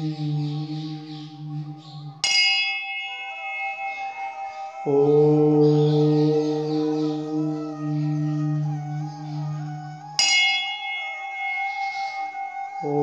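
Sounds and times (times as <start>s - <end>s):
bell ringing: 2.2s - 6.0s, 10.2s - 13.0s.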